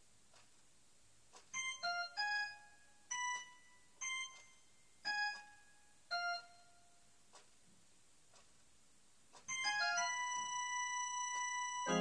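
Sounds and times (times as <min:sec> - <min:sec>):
electronic keyboard high notes: 0:09.5 - 0:12.0.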